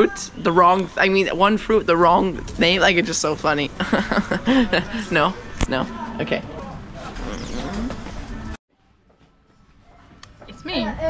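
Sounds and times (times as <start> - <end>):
faint voices: 4.4 - 8.6.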